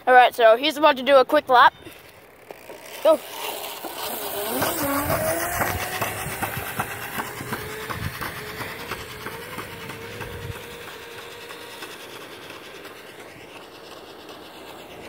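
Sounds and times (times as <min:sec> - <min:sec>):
electric scooter motor whining: 0:00.6 - 0:15.0.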